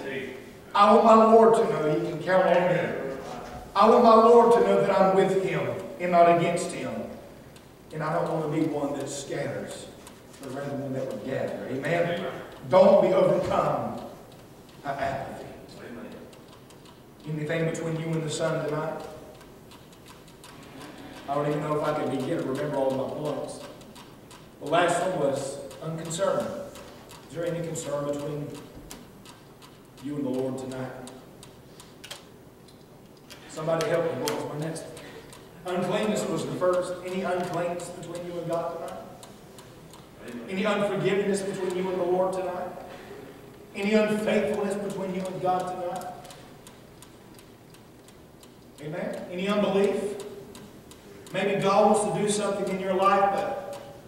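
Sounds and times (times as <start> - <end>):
man preaching: 0.0 - 7.3, 7.9 - 16.3, 17.2 - 19.3, 21.2 - 23.8, 24.6 - 28.7, 30.0 - 31.3, 33.4 - 39.3, 40.1 - 46.5, 48.8 - 50.4, 51.2 - 54.0
man speaking: 0.0 - 7.3, 7.9 - 16.4, 17.2 - 19.3, 21.2 - 23.8, 24.6 - 28.7, 30.0 - 31.2, 33.4 - 39.3, 40.1 - 46.5, 48.8 - 50.4, 51.2 - 54.0
faint steady ticking: 3.8 - 54.0.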